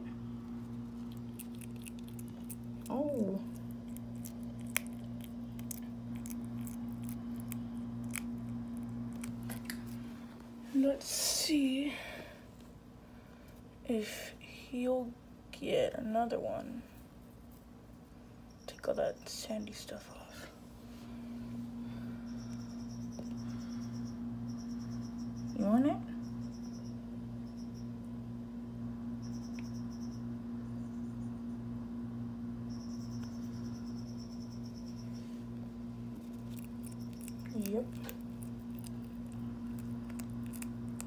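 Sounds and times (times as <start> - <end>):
steady low hum: 0.0 - 41.0
lizard chewing insect crisp clicks: 0.6 - 2.9, 3.5 - 10.1, 36.2 - 41.0.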